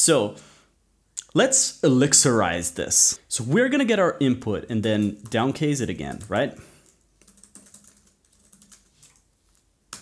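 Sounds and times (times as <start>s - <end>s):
typing on computer keyboard: 6.0s - 9.3s.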